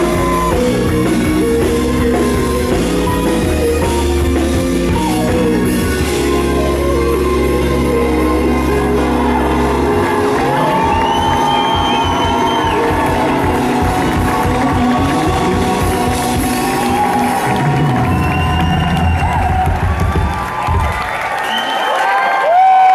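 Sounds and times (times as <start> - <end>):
crowd cheering and whooping: 0.0 - 3.9, 4.8 - 22.9
live band playing soul song: 0.0 - 20.8.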